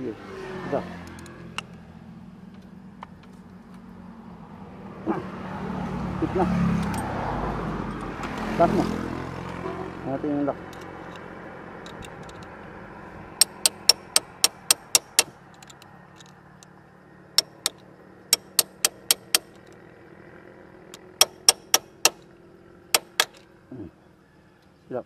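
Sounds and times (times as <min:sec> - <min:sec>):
sharp metallic tool clicks: 0:13.4 - 0:16.3, 0:17.4 - 0:19.8, 0:21.0 - 0:22.3, 0:22.9 - 0:23.4.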